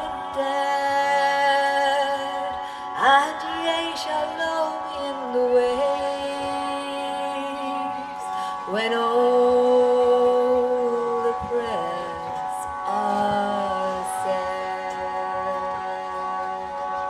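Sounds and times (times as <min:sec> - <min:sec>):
harmonium and tanpura drone: 0:00.0 - 0:17.0.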